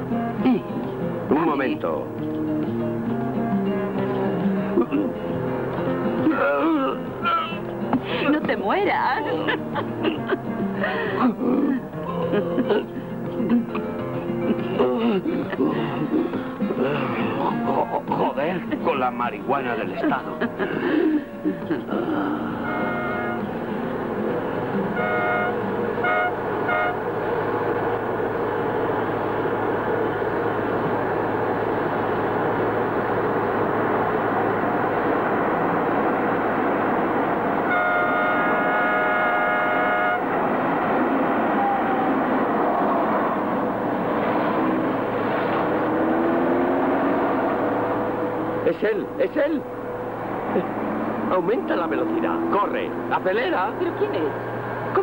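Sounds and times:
vehicle engine and road noise: 0:00.0 - 0:55.0
car horn honking: 0:22.4 - 0:23.6, 0:24.7 - 0:27.1, 0:37.6 - 0:40.4.

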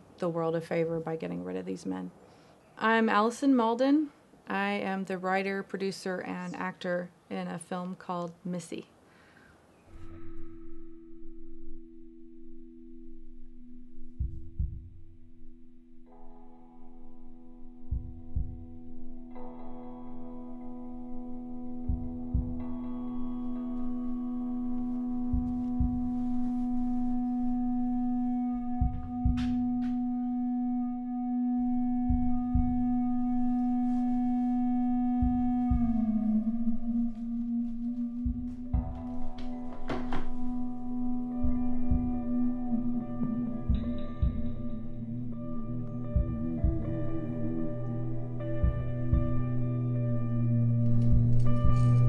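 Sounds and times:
low drone of two held tones: 0:09.9 - 0:39.7, 0:40.4 - 0:52.0.

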